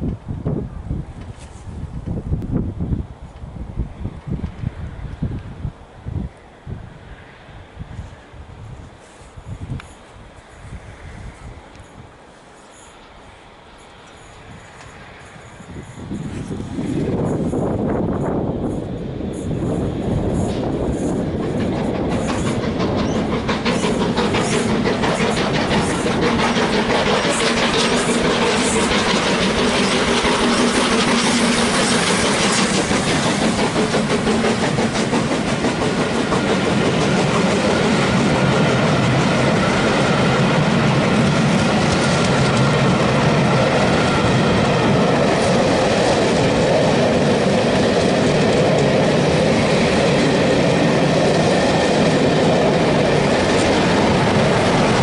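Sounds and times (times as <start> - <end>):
steam locomotive passing: 0.0 - 55.0
train wheels on rails: 0.0 - 55.0.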